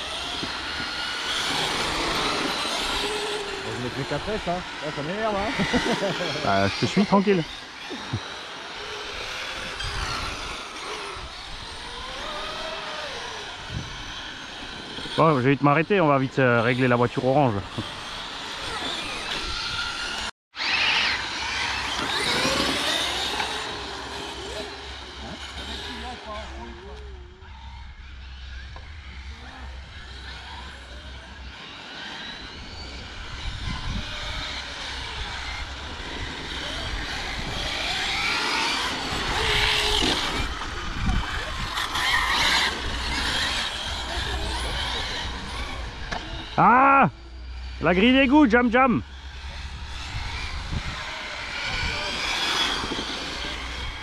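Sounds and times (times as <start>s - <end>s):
electric motors whining: 0.0s - 54.0s.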